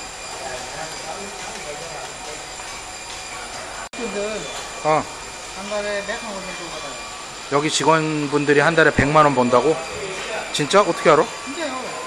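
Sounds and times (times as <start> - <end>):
faint voices: 0.0 - 12.0
rushing room noise: 0.0 - 12.0.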